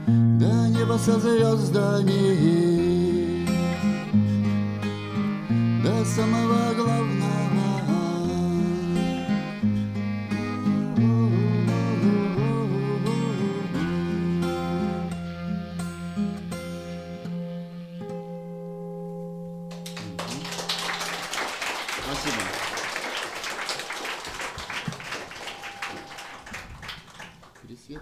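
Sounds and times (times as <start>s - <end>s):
acoustic guitar: 0.0s - 21.2s, 24.3s - 27.4s
clarinet: 0.0s - 27.2s
audience applause: 19.7s - 28.0s.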